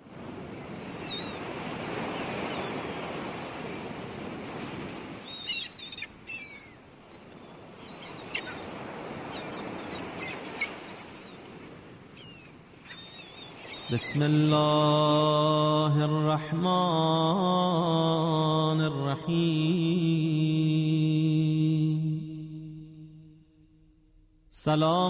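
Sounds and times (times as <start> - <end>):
surf washing: 0.0 - 25.0
birds chirping: 0.5 - 3.2, 5.2 - 14.8.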